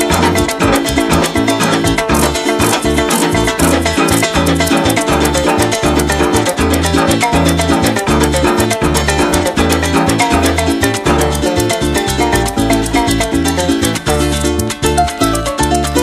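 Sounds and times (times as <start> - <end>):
harp plucking quick runs: 0.0 - 11.2
maracas shaking: 0.0 - 16.0
pulsing bass line: 0.0 - 16.0.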